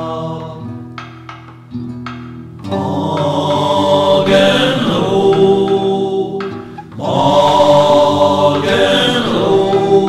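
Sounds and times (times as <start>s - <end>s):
voices singing a held chord: 0.0s - 0.8s, 2.7s - 10.0s
acoustic guitar: 0.0s - 10.0s.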